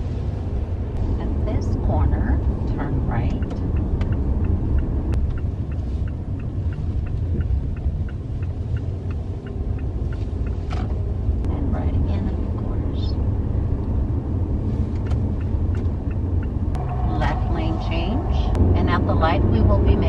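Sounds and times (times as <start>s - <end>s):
car engine and road rumble: 0.0s - 20.0s
turn signal clicking: 0.9s - 20.0s.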